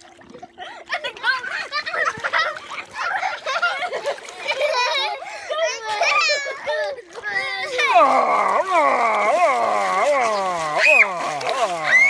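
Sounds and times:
water splashing: 0.0 - 12.0
children talking and calling out: 0.6 - 12.0.

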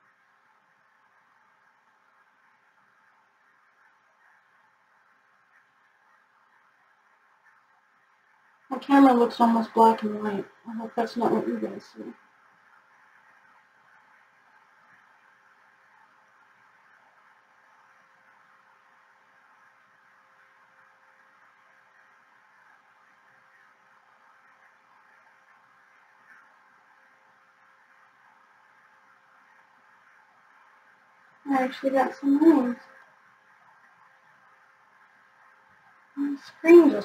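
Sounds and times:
low electrical hum: 0.0 - 37.0.

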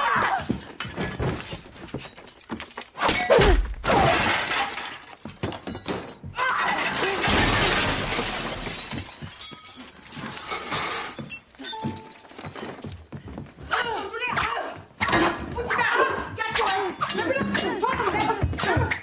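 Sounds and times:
glass shattering: 0.8 - 13.0
furniture crashing: 6.8 - 9.4.

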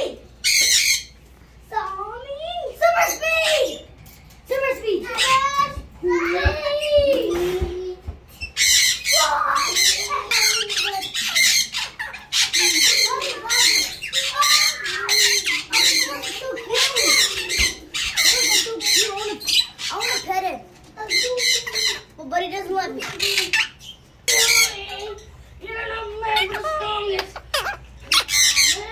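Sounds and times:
parrot squawking: 0.0 - 1.2, 5.0 - 6.2, 8.4 - 28.9
voice-like parrot chatter: 0.0 - 1.2, 2.2 - 7.6, 8.4 - 28.9.

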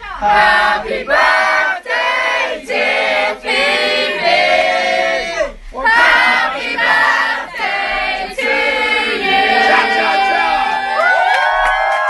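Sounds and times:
group of people singing: 0.0 - 11.1.

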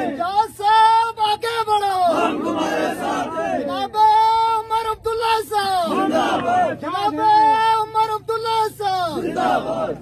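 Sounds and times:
crowd shouting in unison: 0.0 - 0.3, 2.1 - 3.8, 5.9 - 7.6, 9.1 - 10.0
man shouting long call: 6.9 - 9.1.

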